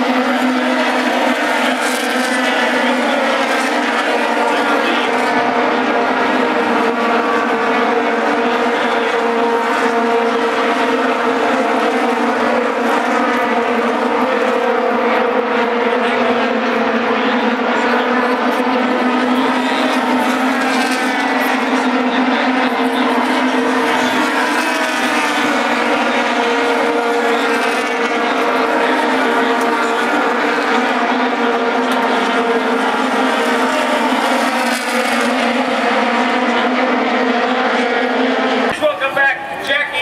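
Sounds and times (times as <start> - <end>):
racing car engines droning: 0.0 - 40.0.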